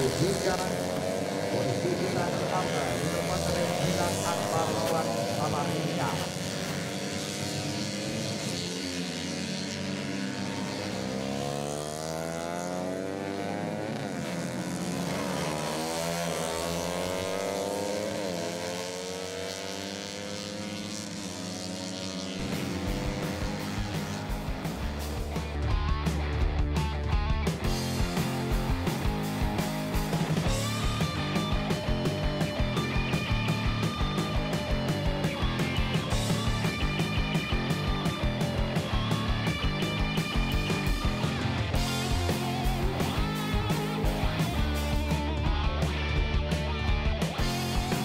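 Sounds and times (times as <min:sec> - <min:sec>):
racing motorcycles at full throttle: 0:00.0 - 0:48.0.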